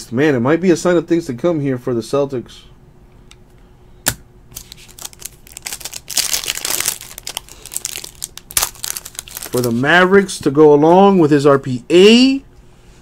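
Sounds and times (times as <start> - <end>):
wrapper crinkling and tearing: 4.5 - 9.9.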